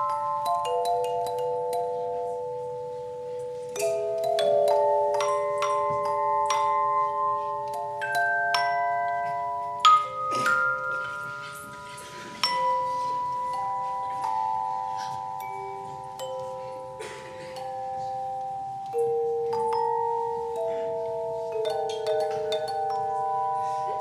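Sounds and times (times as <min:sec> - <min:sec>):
handbell ensemble playing: 0:00.0 - 0:24.0.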